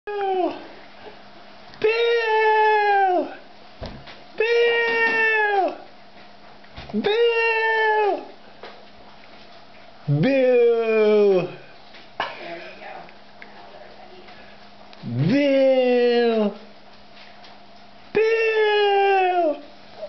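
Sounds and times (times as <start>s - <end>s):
person making long high calls: 1.8s - 3.4s, 4.4s - 5.8s, 7.0s - 8.4s, 18.2s - 19.7s.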